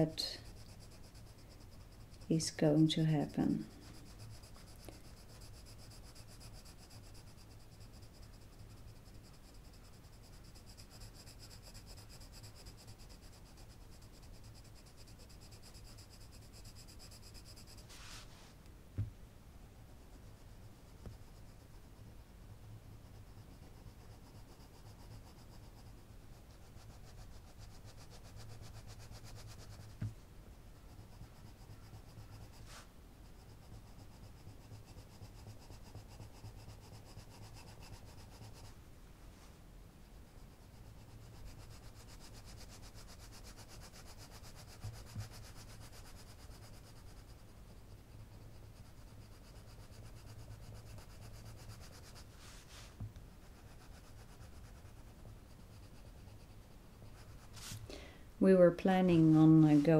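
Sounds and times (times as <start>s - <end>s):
pencil rubbing on paper: 0.0s - 18.5s, 19.8s - 22.2s, 23.0s - 38.8s, 40.2s - 59.9s.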